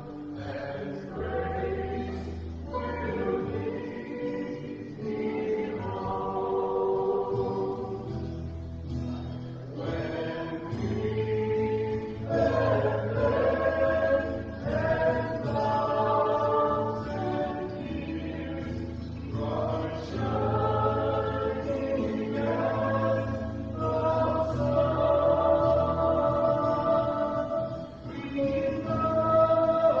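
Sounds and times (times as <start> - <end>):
choir singing a hymn: 0.0 - 30.0.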